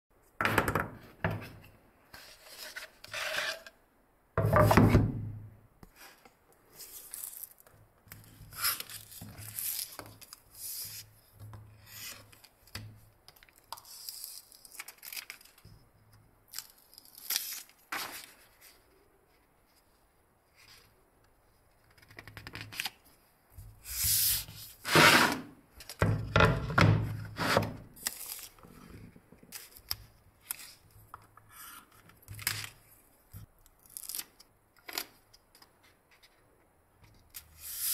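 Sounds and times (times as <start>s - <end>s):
paper rustling: 17.0s - 18.8s.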